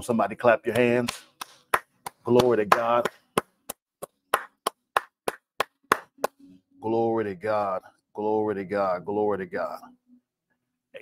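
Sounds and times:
person clapping hands: 0.7 - 6.4.

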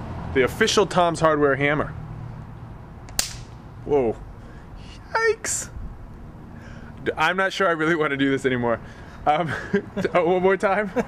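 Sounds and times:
electric spark crack: 3.1 - 3.6.

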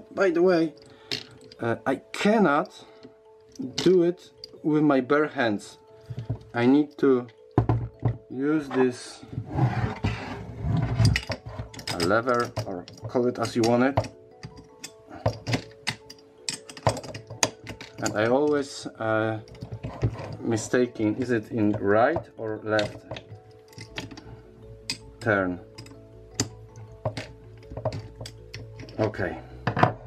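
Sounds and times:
background music: 0.0 - 30.0
metal spanner clicking and clinking: 11.0 - 18.6, 22.8 - 24.2, 24.8 - 29.9.

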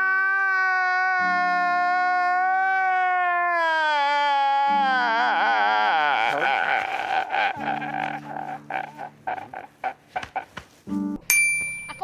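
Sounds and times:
man sobbing and wailing: 0.0 - 10.6
bell-like ding: 11.3 - 12.0.

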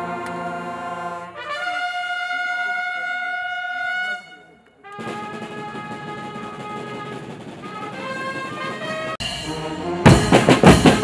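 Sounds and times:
brass instrument long note: 0.0 - 11.0.

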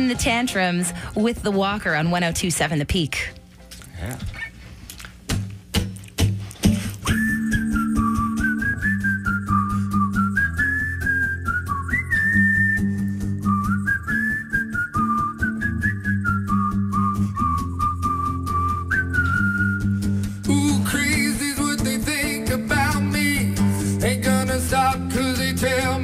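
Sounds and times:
whistled pop melody: 6.7 - 26.0
strummed acoustic guitar: 19.6 - 26.0.

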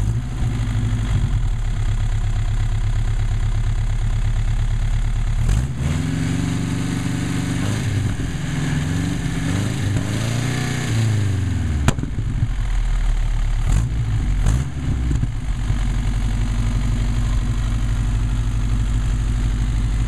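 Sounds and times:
car engine idling and revving: 0.0 - 20.0
engine backfire crack: 7.6 - 12.6.

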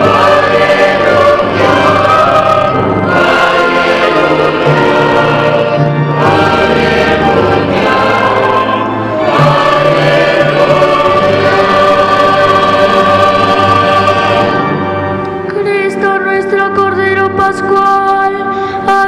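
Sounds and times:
church choir singing: 0.0 - 15.5.

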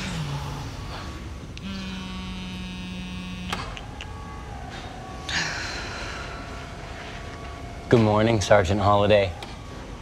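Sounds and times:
phone vibrating buzz: 0.0 - 3.8.

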